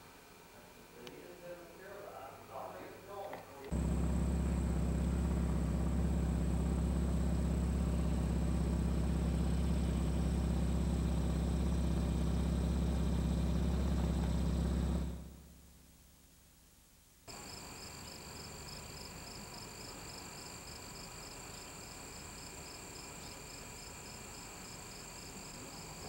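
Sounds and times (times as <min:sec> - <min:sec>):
loud steady low hum: 0:03.7 - 0:15.8.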